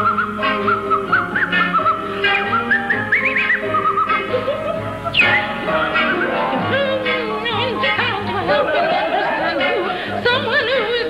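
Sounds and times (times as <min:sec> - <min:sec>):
high warbling singing voice: 0:05.0 - 0:08.8.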